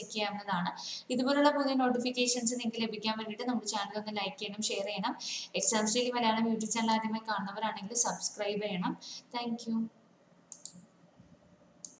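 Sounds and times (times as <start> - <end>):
faint short clicks: 10.5 - 10.9.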